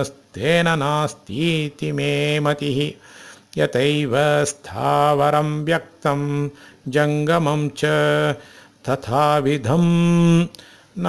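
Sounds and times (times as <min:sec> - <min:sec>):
man chanting verse: 0:00.0 - 0:03.0.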